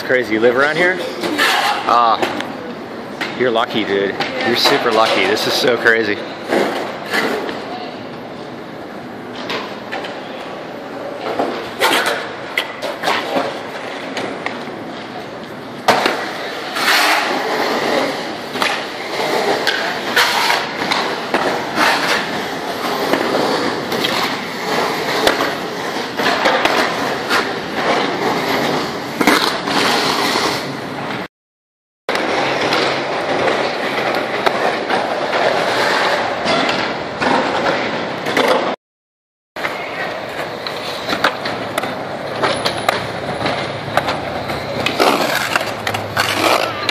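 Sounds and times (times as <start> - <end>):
skateboard wheels rolling on concrete: 0.0 - 31.3, 32.1 - 38.8, 39.6 - 46.9
skateboard clacks on concrete: 39.6 - 46.9.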